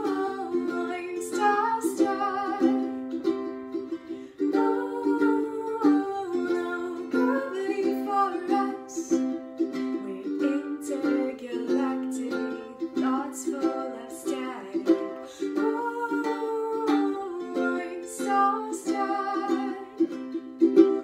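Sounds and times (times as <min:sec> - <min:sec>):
ukulele strumming: 0:00.0 - 0:21.0.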